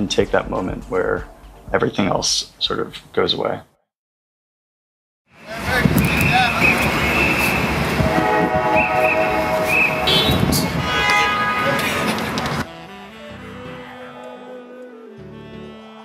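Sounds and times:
traffic: 5.3 - 13.9
voices: 5.4 - 7.7
horn-like notes: 5.5 - 16.0
high whistle-like tone: 6.0 - 10.8
held musical notes: 7.4 - 16.0.

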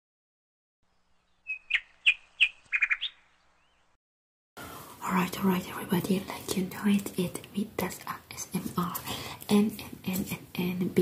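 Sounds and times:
high bird-like chirps: 0.9 - 4.0.

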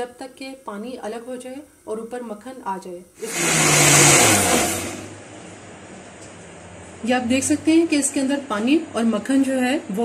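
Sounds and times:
blender running: 3.2 - 5.2.

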